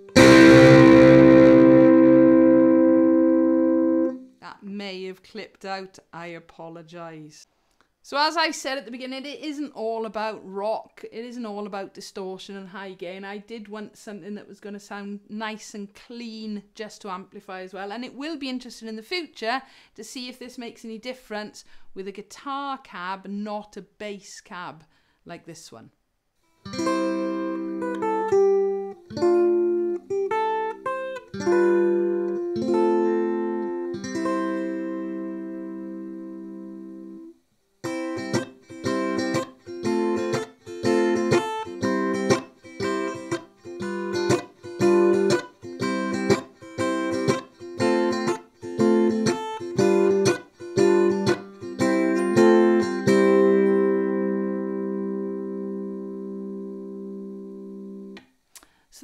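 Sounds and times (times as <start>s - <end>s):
electric ukulele chords: 0.0s - 4.3s, 26.7s - 37.3s, 37.9s - 58.2s.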